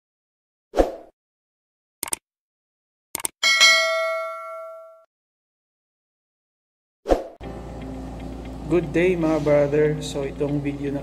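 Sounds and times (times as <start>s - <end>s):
quick clicks: 2.0s - 2.2s, 3.2s - 3.4s
bright bell ding: 3.4s - 5.1s.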